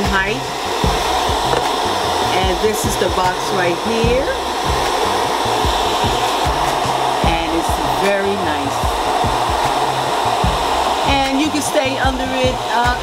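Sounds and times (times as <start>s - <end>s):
hair dryer blowing air: 0.0s - 13.0s.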